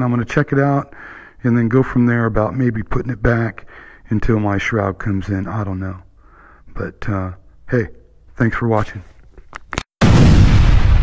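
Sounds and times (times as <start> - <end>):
deep rumbling boom: 10.0 - 11.0.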